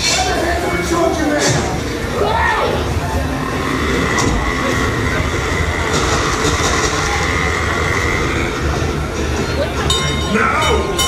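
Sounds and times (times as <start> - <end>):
train rumbling on track: 3.0 - 11.0.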